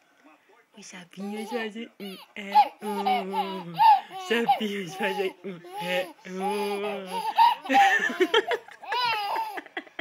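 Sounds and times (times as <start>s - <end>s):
baby laughing: 1.2s - 10.0s.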